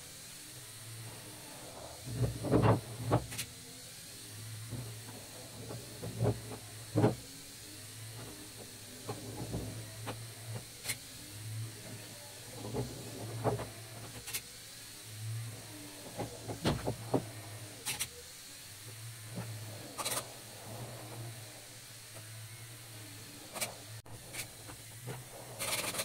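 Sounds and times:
electric motors humming: 0:00.0 - 0:26.0.

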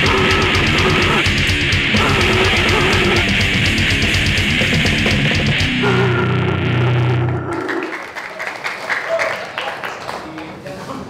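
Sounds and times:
distorted electric guitar chord: 0:00.0 - 0:07.6.

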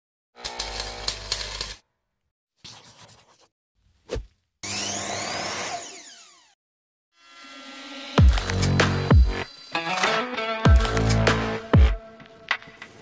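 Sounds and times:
power tools and sawing: 0:00.4 - 0:01.8, 0:04.6 - 0:10.2.

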